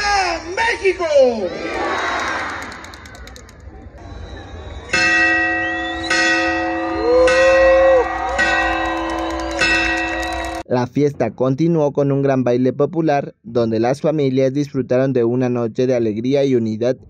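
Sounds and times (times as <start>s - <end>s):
crowd cheering: 1.3s - 10.6s
large bell ringing: 4.9s - 10.6s.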